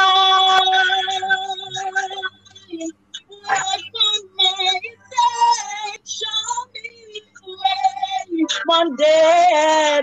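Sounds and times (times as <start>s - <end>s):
faint steady hum: 0.0s - 10.0s
woman singing gospel: 0.0s - 10.0s.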